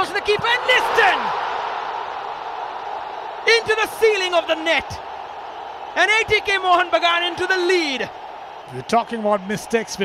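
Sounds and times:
commentator shouting: 0.0s - 1.4s, 3.4s - 5.0s, 6.0s - 8.1s
stadium crowd cheering: 0.0s - 10.0s.

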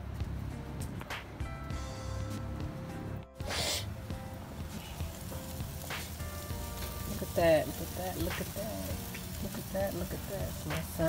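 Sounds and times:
meat sizzling on a grill: 3.4s - 11.0s.

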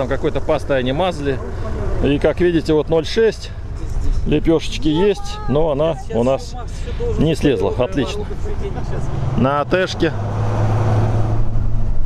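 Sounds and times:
suv engine droning under load: 0.0s - 12.0s.

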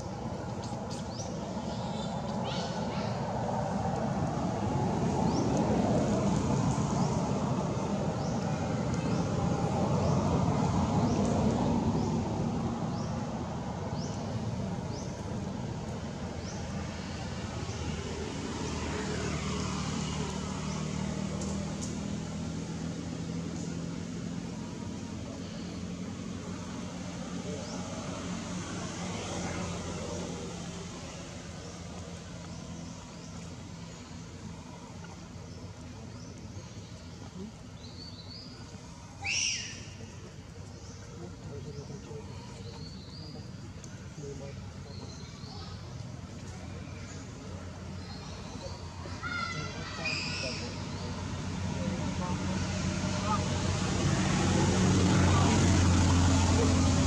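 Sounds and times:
road traffic rumble: 0.0s - 57.0s
vehicle passing: 0.0s - 57.0s.

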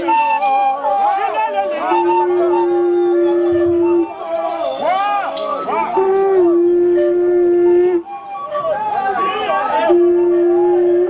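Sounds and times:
howl-like wailing voices: 0.1s - 11.0s.

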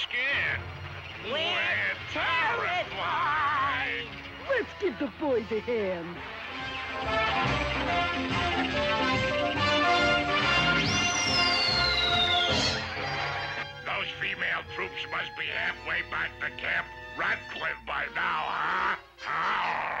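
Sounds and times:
cartoon music: 1.2s - 20.0s
sliding whistle-like tone: 10.4s - 13.6s
cartoon voice jabbering gibberish: 15.2s - 20.0s.

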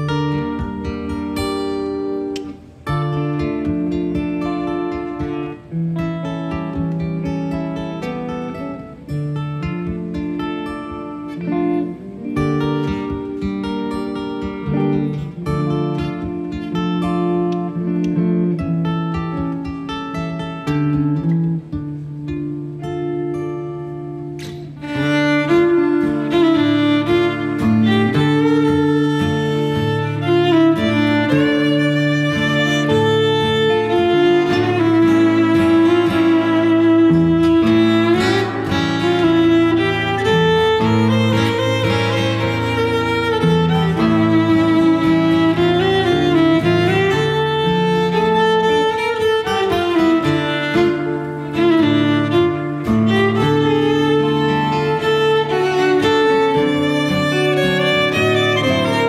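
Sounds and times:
fiddle playing: 0.0s - 21.7s, 24.5s - 59.0s
acoustic guitar melody: 0.0s - 59.0s.

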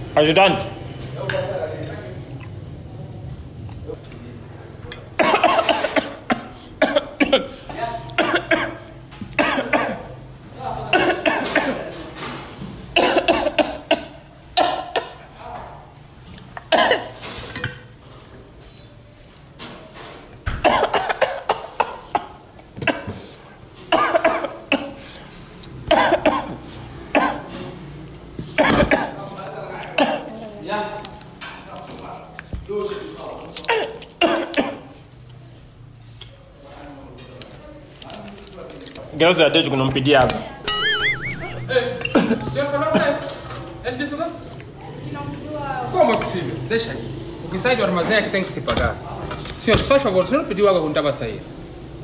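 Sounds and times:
person coughing: 5.2s - 7.6s, 8.2s - 8.8s, 13.0s - 15.2s.

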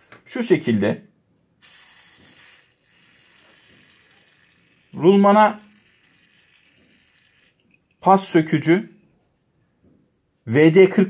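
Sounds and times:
aerosol spray hissing: 1.6s - 7.7s.

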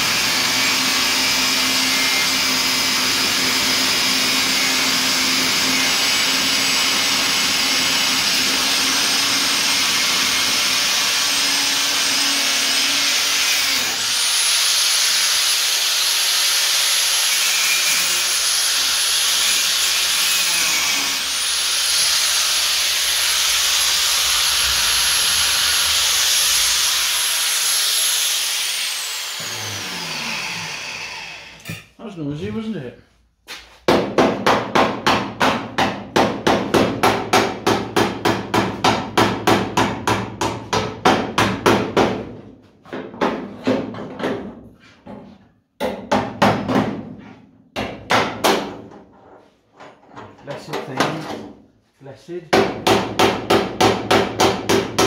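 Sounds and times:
angle grinder whining on steel: 0.0s - 31.8s.

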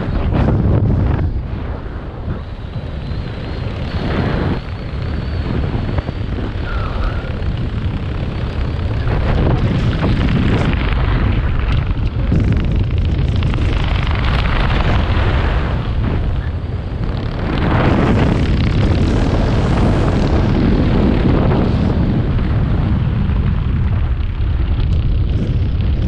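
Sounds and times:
wind roaring on microphone: 0.0s - 26.0s.

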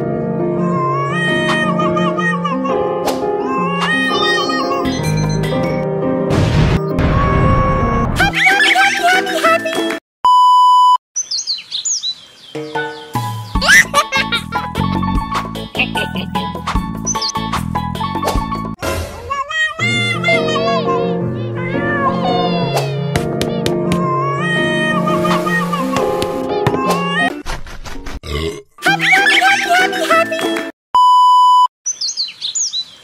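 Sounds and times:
cheerful music: 0.1s - 6.3s, 8.1s - 10.0s, 12.6s - 19.1s, 19.8s - 27.4s, 28.8s - 30.7s
high sweeping bird chirps: 11.2s - 13.8s, 17.0s - 17.4s, 31.9s - 33.0s.

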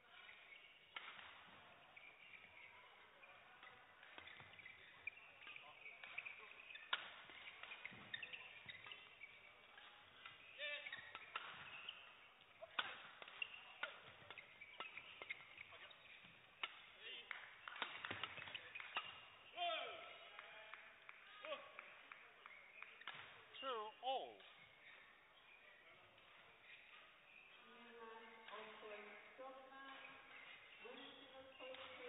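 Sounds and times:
shoes squeaking on court floor: 0.0s - 32.0s
racket striking shuttlecock: 0.2s - 2.7s, 3.6s - 11.9s, 12.6s - 17.0s, 17.6s - 19.2s.

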